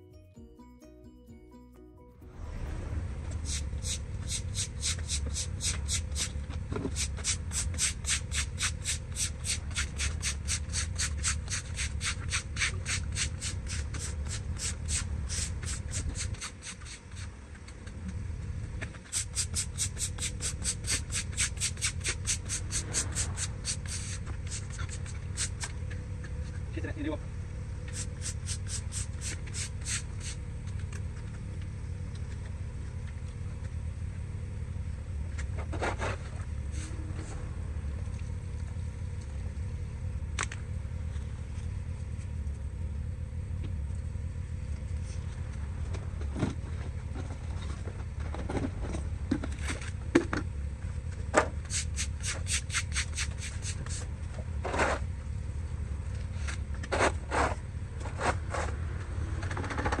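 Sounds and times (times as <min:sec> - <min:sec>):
steady low rumble: 0:02.0 - 0:51.6
broom scraping grit on concrete: 0:02.3 - 0:17.3, 0:19.1 - 0:25.7.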